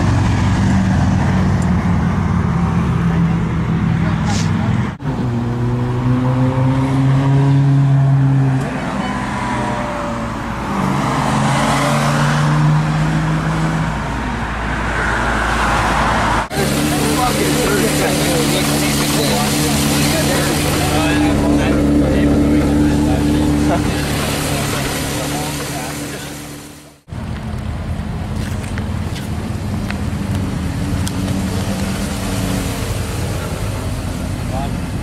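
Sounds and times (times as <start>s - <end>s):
sports car engine at low revs: 16.5s - 35.0s.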